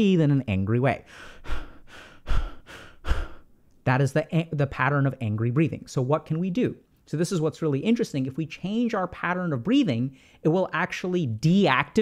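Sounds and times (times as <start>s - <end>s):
man breathing fast and hard: 1.0s - 3.6s, 10.1s - 10.4s.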